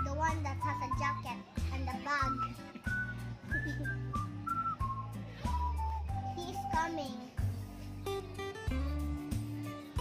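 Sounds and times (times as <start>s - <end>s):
whistle-like melody: 0.0s - 8.2s.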